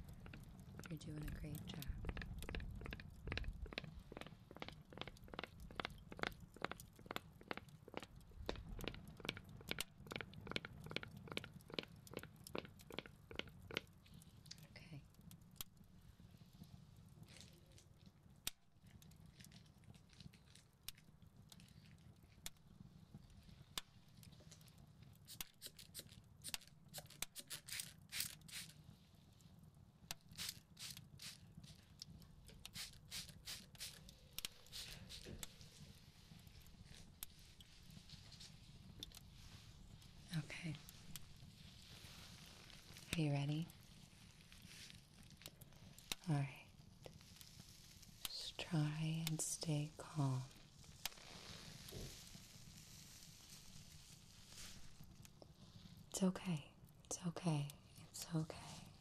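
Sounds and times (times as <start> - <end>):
low steady background hum: 0.0 - 59.0
packaging crinkling and tearing: 19.3 - 22.4.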